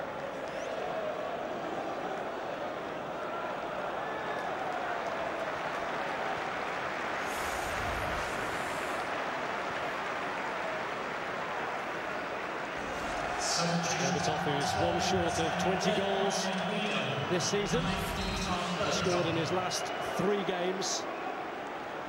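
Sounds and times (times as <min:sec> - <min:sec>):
stadium crowd din: 0:00.0 - 0:22.0.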